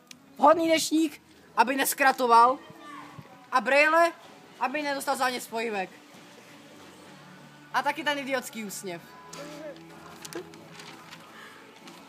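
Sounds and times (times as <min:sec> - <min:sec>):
paper rustling and crinkling: 0:09.3 - 0:12.0
soft crackles: 0:09.3 - 0:12.0.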